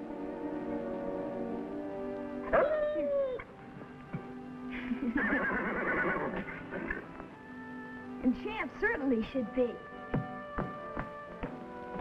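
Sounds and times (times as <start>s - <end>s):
orchestral underscore: 0.0s - 12.0s
horse whinnying: 5.2s - 7.1s.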